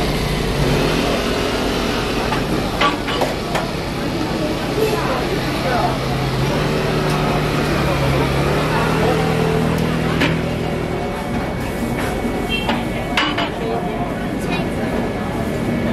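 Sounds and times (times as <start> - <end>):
indistinct voices: 0.0 - 15.9.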